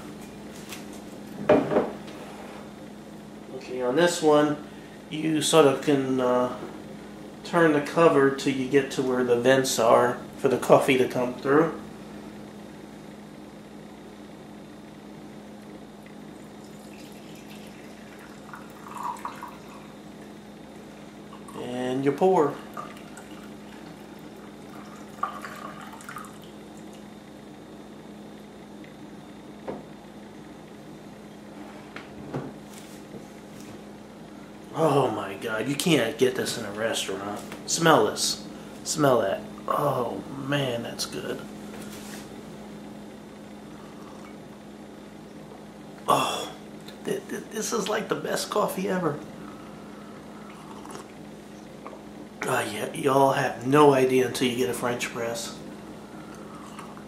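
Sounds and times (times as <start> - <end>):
steady hum: 0.0 - 57.0
coffee pouring into a mug: 16.4 - 21.7, 22.4 - 27.0
light knock on counter: 29.6 - 29.9
sip of hot coffee: 50.5 - 51.2.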